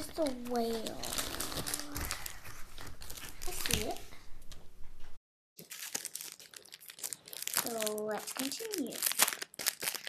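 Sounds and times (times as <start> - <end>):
rustling and crinkling materials: 0.0 - 10.0.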